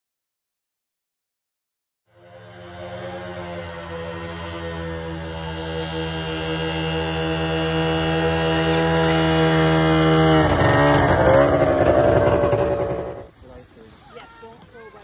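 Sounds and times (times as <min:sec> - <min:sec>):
snowmobile engine running: 0:02.1 - 0:13.3.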